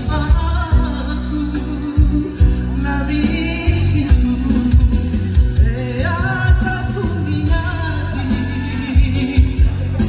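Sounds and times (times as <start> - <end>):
backing track with bass beat: 0.0 - 10.0
man singing into a microphone: 0.0 - 10.0.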